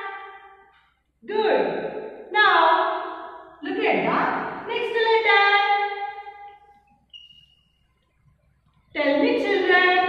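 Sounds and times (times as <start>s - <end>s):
faint high-pitched squeak: 7.1s - 7.6s.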